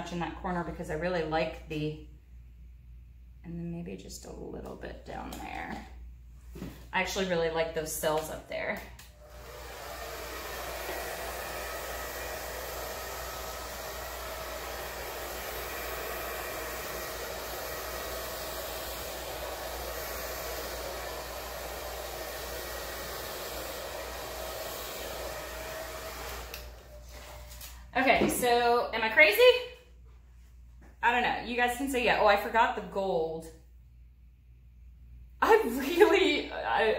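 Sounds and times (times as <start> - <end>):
hair dryer blowing: 7.0 - 29.5.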